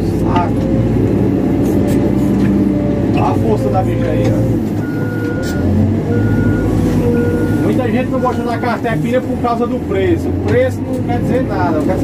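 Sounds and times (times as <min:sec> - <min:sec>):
diesel engine running: 0:00.0 - 0:12.0
backup alarm beeping: 0:04.8 - 0:08.8.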